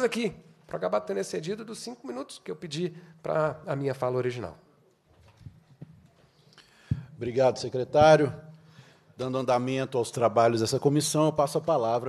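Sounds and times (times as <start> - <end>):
faint room noise: 0.0 - 12.0
soft knocks on microphone: 6.9 - 7.2.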